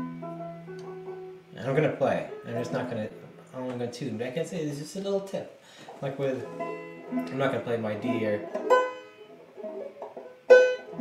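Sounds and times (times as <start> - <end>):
banjo strings plucked: 0.0 - 4.6, 5.8 - 11.0.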